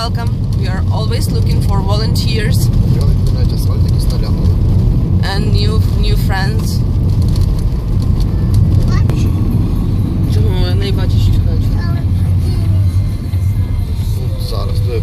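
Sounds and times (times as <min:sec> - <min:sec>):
car road noise: 0:00.0 - 0:15.0.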